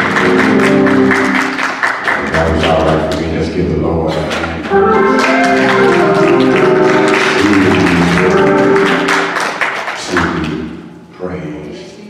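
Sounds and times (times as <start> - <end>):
church worship music: 0.0 - 11.9
man speaking: 2.2 - 4.8, 7.3 - 8.5, 10.0 - 11.8.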